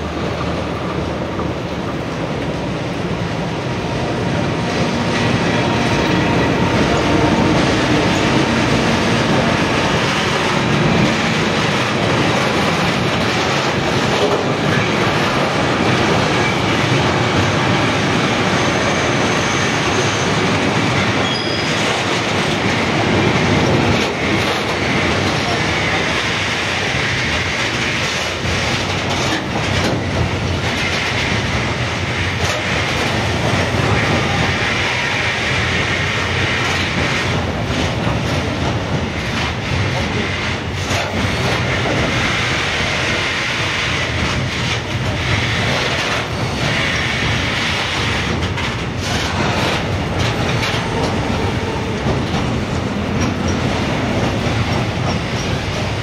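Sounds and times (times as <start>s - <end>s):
steel wheels rumbling on rails: 0.0s - 56.0s.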